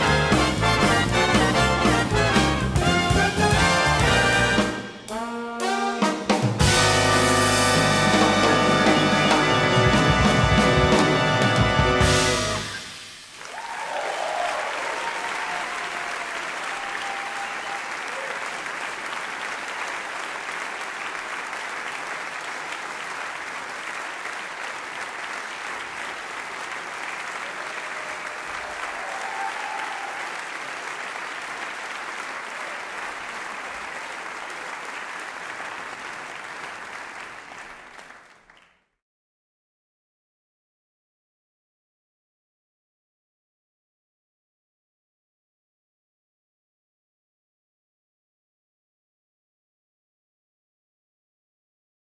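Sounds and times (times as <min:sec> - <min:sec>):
audience applauding: 0:00.0 - 0:04.9, 0:06.8 - 0:38.9.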